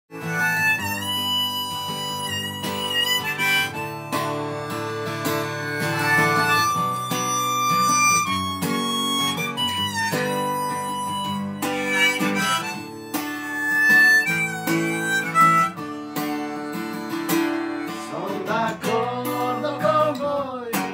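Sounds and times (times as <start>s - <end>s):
harmonica melody: 0.1s - 20.3s
acoustic guitar: 0.1s - 20.9s.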